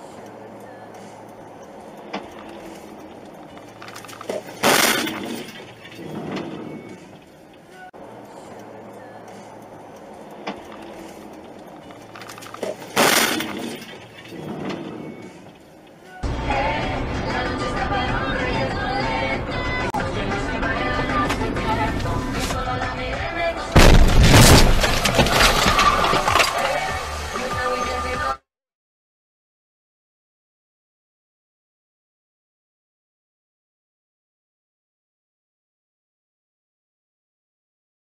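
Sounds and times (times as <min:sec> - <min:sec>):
music: 0:16.0 - 0:23.8, 0:26.2 - 0:28.4
wheel crashing into car: 0:23.8 - 0:26.8.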